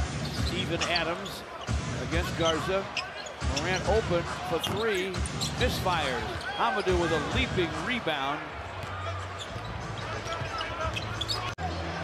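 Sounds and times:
arena crowd murmur: 5.8 - 12.0.

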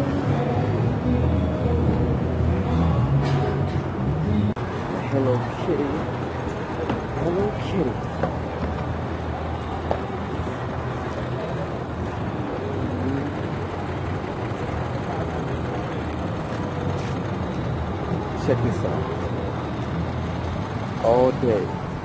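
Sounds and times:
bus passing: 0.0 - 22.0
city street traffic: 0.0 - 22.0
voices of passers-by: 0.0 - 22.0.

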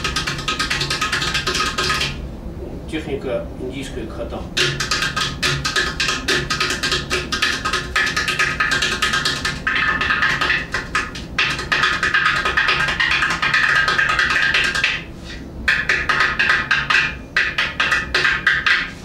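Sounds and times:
pot drum finger strokes: 0.0 - 2.2, 4.6 - 19.0.

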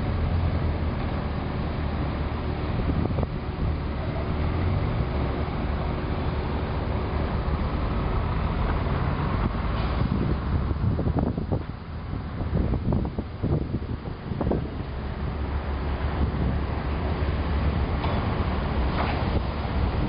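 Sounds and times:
wind blowing across microphone: 2.3 - 20.0.

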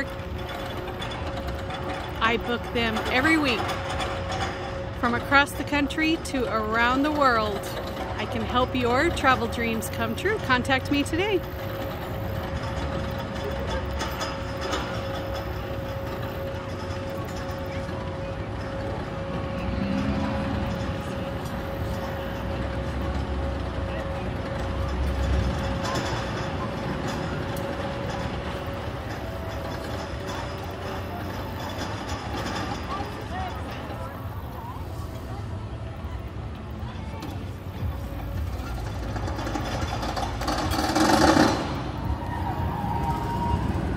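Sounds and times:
chain lift hum: 0.0 - 43.9.

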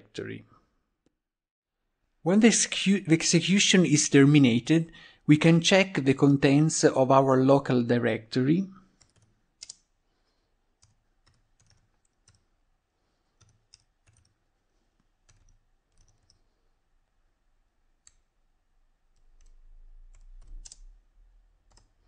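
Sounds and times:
computer keyboard keystrokes: 9.0 - 9.8, 10.8 - 12.5, 13.4 - 14.4, 15.0 - 16.5, 19.2 - 20.9, 21.7 - 22.0.

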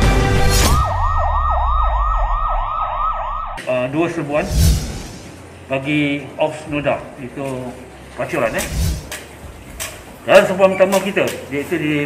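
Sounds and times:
intro music: 0.0 - 3.6
yelping police siren: 0.6 - 3.6
low rumble: 4.3 - 5.6
short rush of sound: 4.4 - 5.4.

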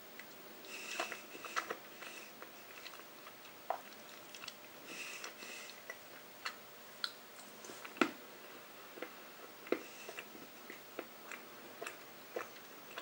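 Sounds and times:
mouth clicks and smacks chewing: 1.0 - 8.1, 9.0 - 13.0.

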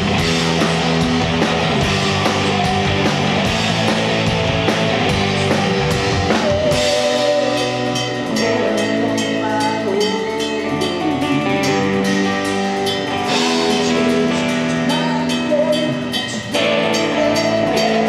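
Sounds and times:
bass guitar: 0.0 - 18.0
drum kit: 0.0 - 18.0
electric guitars: 0.0 - 18.0.

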